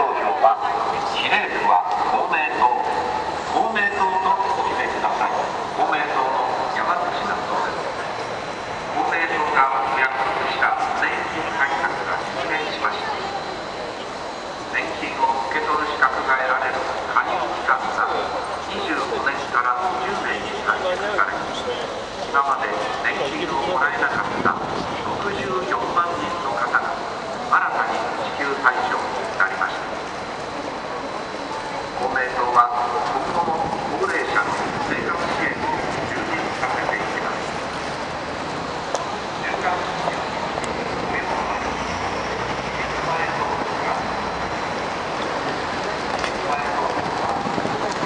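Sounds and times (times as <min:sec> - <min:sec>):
city street noise hum: 0:00.0 - 0:48.0
indistinct voices: 0:00.0 - 0:48.0
speech over a loudspeaker: 0:00.0 - 0:48.0
traffic noise: 0:00.0 - 0:48.0.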